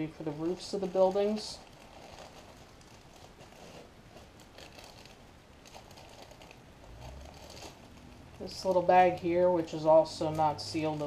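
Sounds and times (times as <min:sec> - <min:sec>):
plastic bags crinkling: 0:00.0 - 0:11.0.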